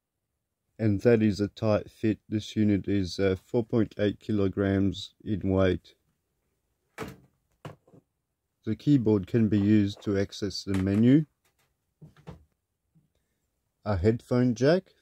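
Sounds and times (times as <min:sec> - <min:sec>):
man talking: 0:00.8 - 0:06.0, 0:08.6 - 0:11.3, 0:13.9 - 0:15.0.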